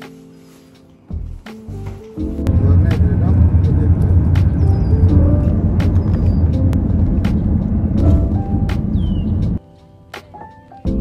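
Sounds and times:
faint music: 0.0 - 11.0
car road and engine rumble: 2.4 - 9.6.

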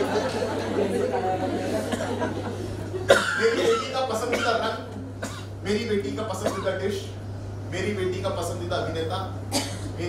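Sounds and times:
audience laughing and chattering: 0.0 - 3.5
low electrical hum: 0.0 - 10.0.

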